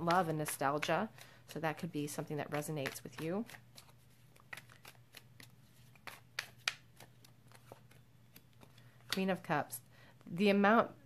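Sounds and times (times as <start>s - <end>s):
cards shuffling and snapping: 2.2s - 9.3s.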